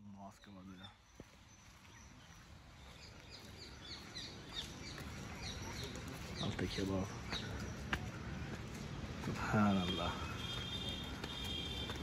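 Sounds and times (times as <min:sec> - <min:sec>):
small birds chirping: 0:00.0 - 0:11.8.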